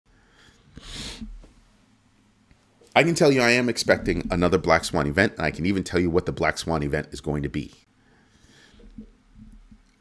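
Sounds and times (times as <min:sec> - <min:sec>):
man's breathy burst of air: 0:00.2 - 0:01.4.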